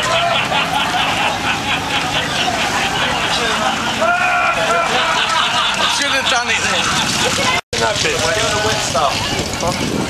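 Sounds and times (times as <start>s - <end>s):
heavy vehicle engine humming: 0.0s - 7.6s
people calling out: 0.0s - 7.6s.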